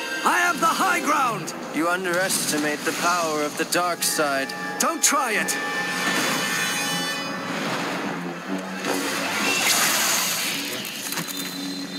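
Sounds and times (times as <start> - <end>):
film music: 0.0 - 11.7.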